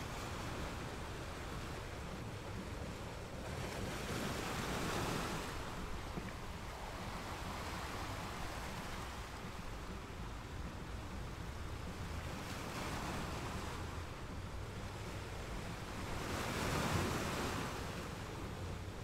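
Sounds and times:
waves washing onto beach: 0:00.0 - 0:19.0.

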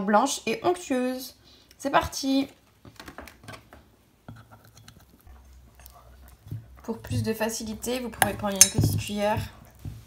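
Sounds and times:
whisk clicking against metal bowl: 0:06.8 - 0:09.8.

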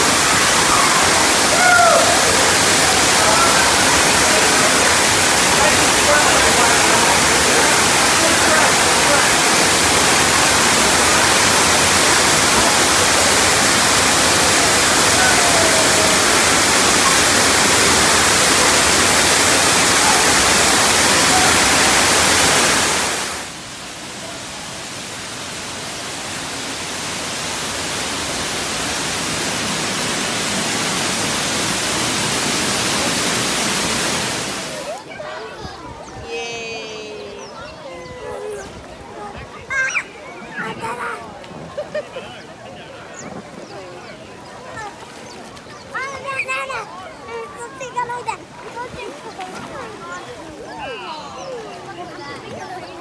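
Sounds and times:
waterfall pouring into pool: 0:00.0 - 0:35.3.

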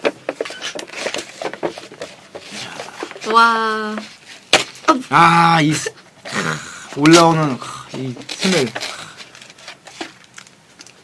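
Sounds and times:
plastic packaging crinkling: 0:08.0 - 0:11.0.

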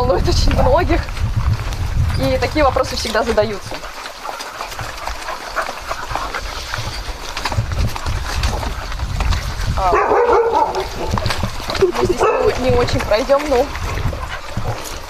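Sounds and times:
dogs barking and yipping: 0:02.7 - 0:15.0.

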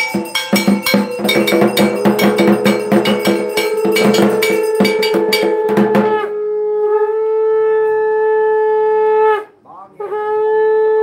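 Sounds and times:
conch shell blown: 0:00.0 - 0:11.0.

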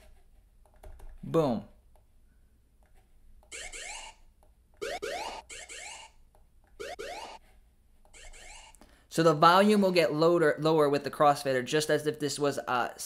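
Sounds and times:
synthesized laser zaps: 0:04.8 - 0:06.1, 0:06.8 - 0:07.4, 0:08.2 - 0:08.8.

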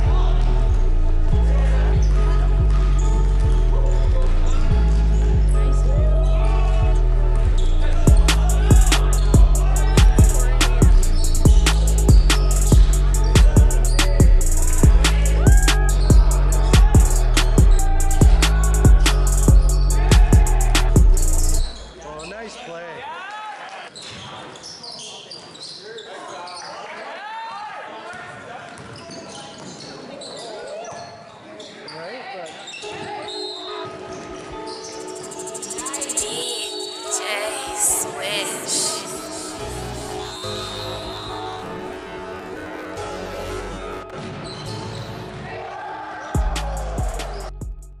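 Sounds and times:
background music: 0:00.0 - 0:22.0, 0:32.9 - 0:48.0
voices echoing in a hall: 0:00.0 - 0:47.6.

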